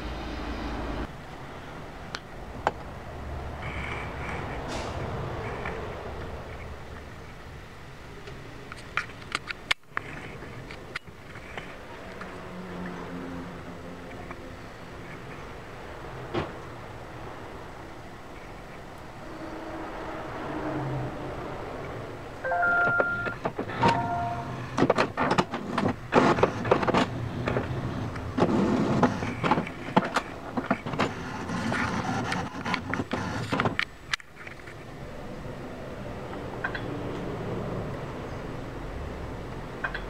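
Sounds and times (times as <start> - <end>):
short electronic tones: 22.4 - 24.6
printer mechanism clattering: 22.8 - 33.9
printer motor whirring: 23.3 - 33.8.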